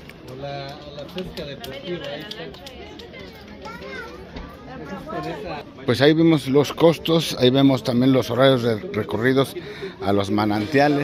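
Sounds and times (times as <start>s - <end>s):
people and children talking: 1.2s - 5.7s.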